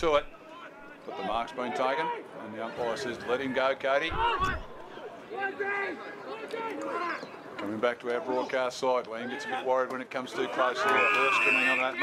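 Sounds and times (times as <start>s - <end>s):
loud commentary: 0.0s - 12.0s.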